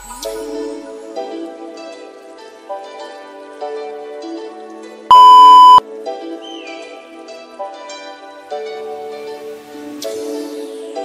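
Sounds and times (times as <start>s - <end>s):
electronic timer beep: 5.1s - 5.8s.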